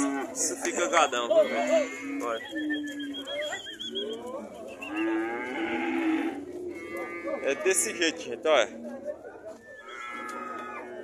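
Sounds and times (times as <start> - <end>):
cattle mooing: 0.0 - 3.3, 4.2 - 8.2, 9.8 - 11.0.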